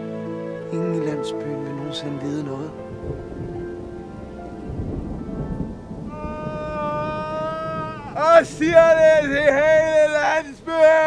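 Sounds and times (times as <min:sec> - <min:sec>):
low rumble: 0:02.2 - 0:11.0
man screaming high-pitched: 0:06.1 - 0:11.0.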